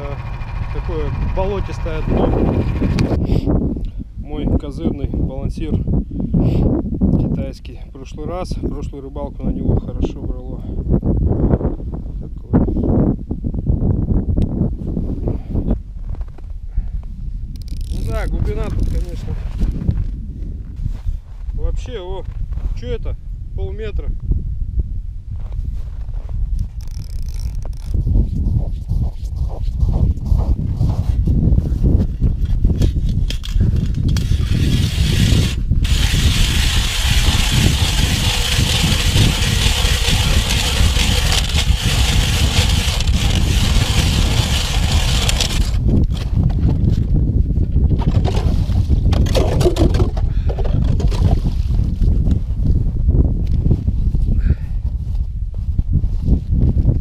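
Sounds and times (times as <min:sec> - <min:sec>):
ice auger grinding through ice: 0:00.0 - 0:03.2, 0:17.6 - 0:19.2, 0:26.8 - 0:28.0, 0:33.3 - 0:46.2, 0:48.0 - 0:51.6
low rumble: 0:00.0 - 0:04.2, 0:27.9 - 0:57.0.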